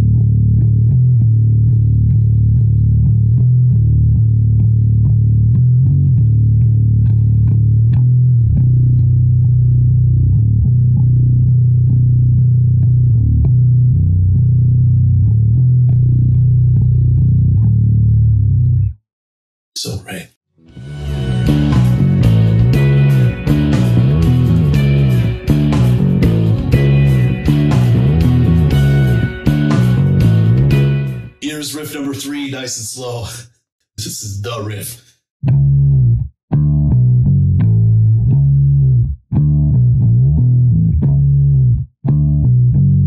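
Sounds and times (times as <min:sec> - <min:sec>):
bass guitar riff played with pick: 0:00.0 - 0:19.0, 0:20.6 - 0:31.6, 0:35.4 - 0:43.0.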